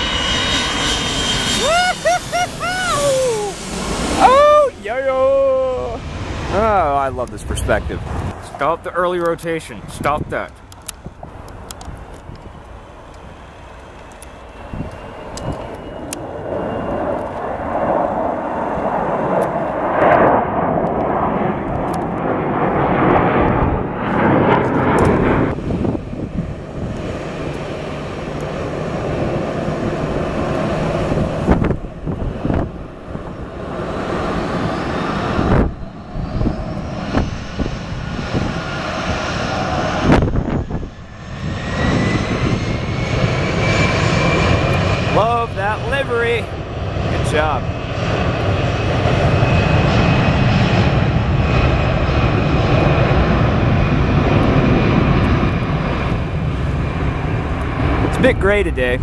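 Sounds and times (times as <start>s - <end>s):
jet engine roar: 0.0s - 59.0s
jet engine whine on ground: 0.0s - 59.0s.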